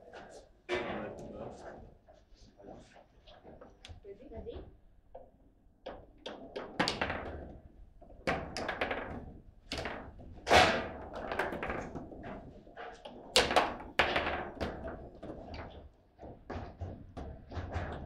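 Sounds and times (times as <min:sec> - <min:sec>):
foosball knocks and clacks: 0:04.6 - 0:18.0.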